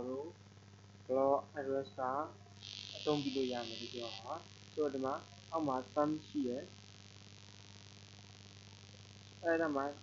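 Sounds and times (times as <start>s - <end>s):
man talking: 0.0s - 0.3s, 1.1s - 2.3s, 3.0s - 6.7s, 9.4s - 10.0s
high buzzing hiss: 0.0s - 10.0s
low mains hum: 0.0s - 10.0s.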